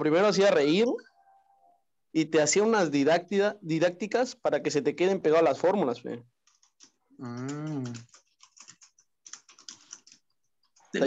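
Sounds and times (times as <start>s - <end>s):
computer keyboard typing: 6.4s - 10.9s.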